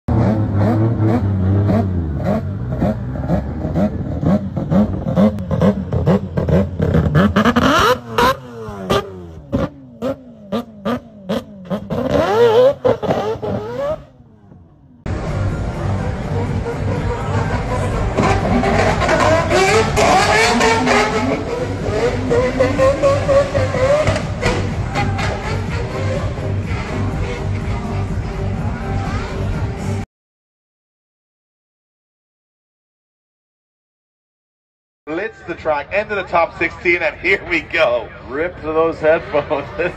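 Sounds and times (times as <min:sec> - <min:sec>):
car engines revving hard: 0:00.1 - 0:30.0.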